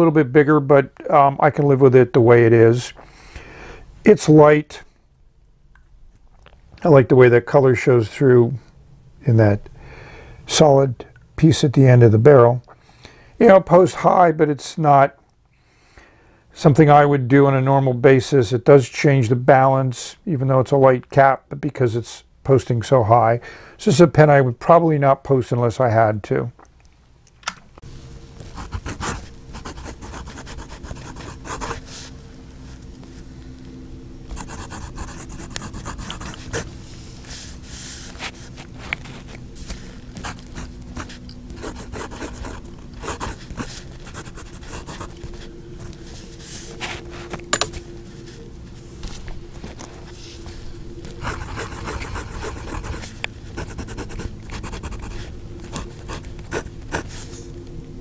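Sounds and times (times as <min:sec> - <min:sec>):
faint steady hum: 0:00.0 - 0:58.0
pen nib scratching on paper: 0:28.5 - 0:31.9, 0:34.3 - 0:36.8, 0:40.2 - 0:45.5, 0:51.2 - 0:57.3.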